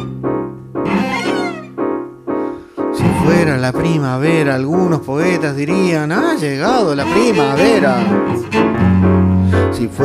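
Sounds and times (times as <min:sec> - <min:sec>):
electric keyboard: 0:00.0 - 0:06.4
cello: 0:00.8 - 0:01.8, 0:06.7 - 0:10.0
person singing: 0:03.0 - 0:08.3.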